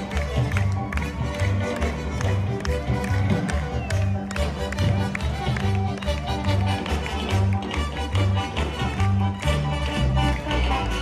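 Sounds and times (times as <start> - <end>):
lilting folk music with bass: 0.0 - 11.0.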